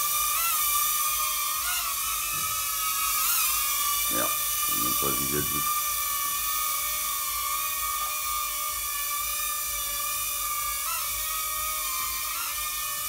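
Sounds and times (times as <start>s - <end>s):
drone motors high-pitched whine: 0.0s - 13.0s.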